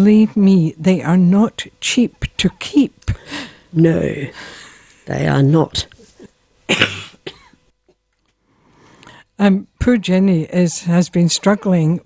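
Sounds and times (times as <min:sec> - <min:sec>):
woman coughing: 0:06.7 - 0:07.6.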